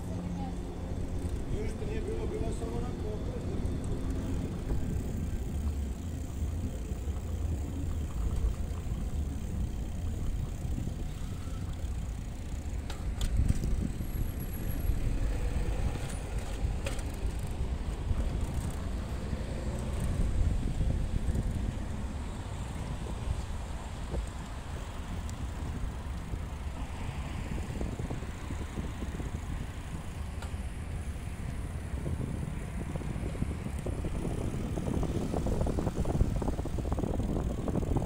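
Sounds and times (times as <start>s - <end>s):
bicycle rolling over paving: 0.9s - 38.0s
wind on microphone: 3.8s - 38.0s.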